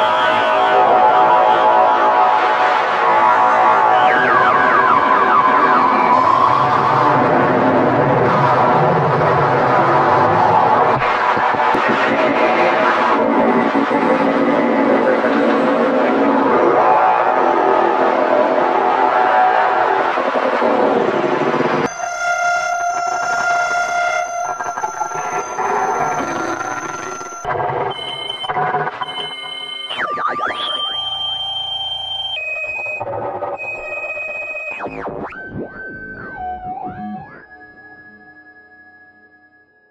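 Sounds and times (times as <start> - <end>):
harsh electronic noise: 0.0 - 37.6
stuttering high tones: 21.8 - 32.4.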